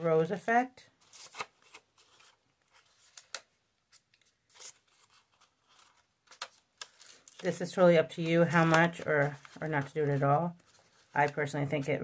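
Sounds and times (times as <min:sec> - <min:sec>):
paper petals rustling: 0:01.0 - 0:12.0.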